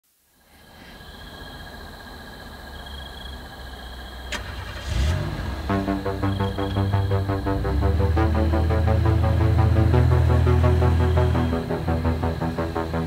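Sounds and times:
car engine rumble and revving: 4.2 - 13.0.

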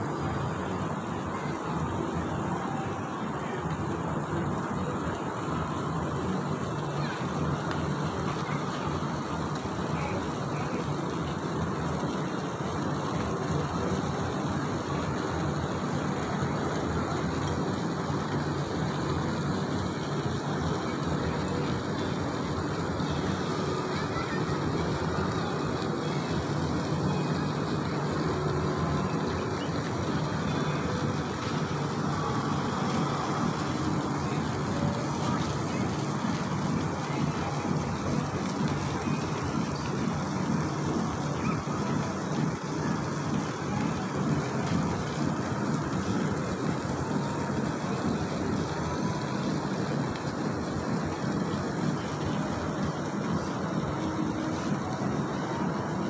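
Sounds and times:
distant voices: 0.0 - 56.0
road traffic hum: 0.0 - 56.0.

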